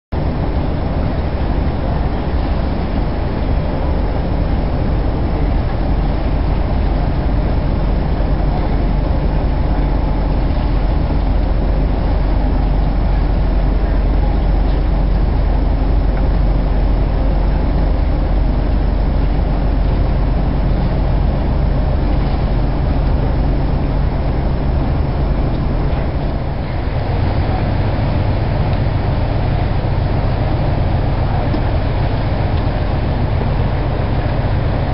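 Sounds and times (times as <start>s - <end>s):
boat engine humming: 0.1s - 34.9s.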